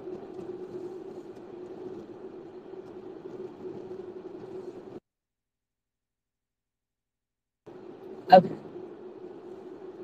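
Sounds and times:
phone microphone background hum: 0.0 - 5.0, 7.7 - 10.0.

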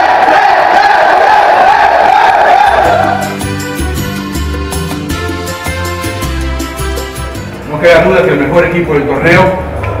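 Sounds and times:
men singing and shouting: 0.0 - 3.5
background music with bass and beat: 2.7 - 8.1.

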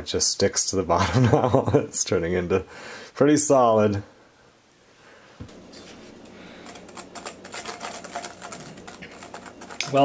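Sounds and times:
steady low hum: 5.4 - 10.0.

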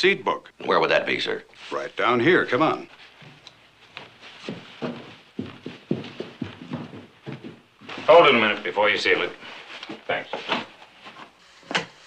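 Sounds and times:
footsteps on hard floor: 2.9 - 8.7.

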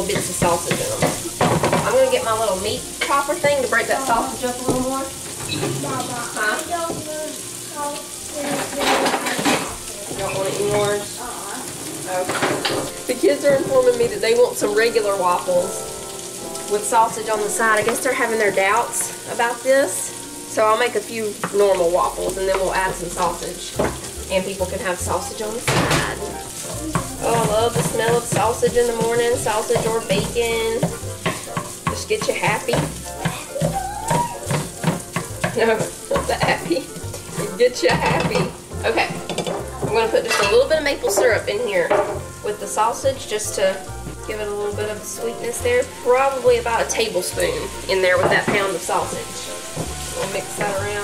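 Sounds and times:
sausage sizzling in frying pan: 0.0 - 51.0
scraping in pan: 46.8 - 51.0.

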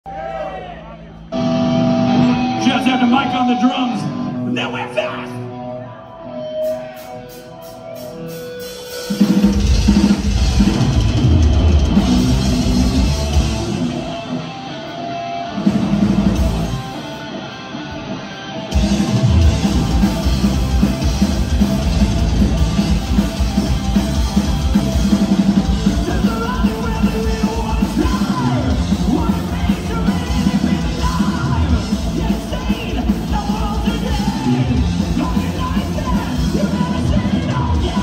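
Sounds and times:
heavy metal band playing: 0.1 - 38.0
distorted electric guitars: 0.2 - 38.0
voice over public address: 2.5 - 6.1.

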